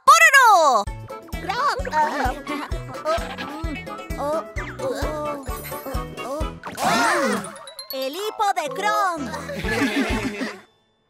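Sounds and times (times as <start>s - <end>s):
upbeat cartoon theme song: 0.1s - 10.7s.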